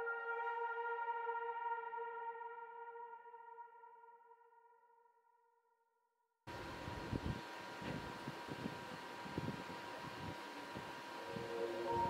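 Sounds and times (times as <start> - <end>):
background hiss: 6.5 - 12.0
faint steady whine: 6.5 - 12.0.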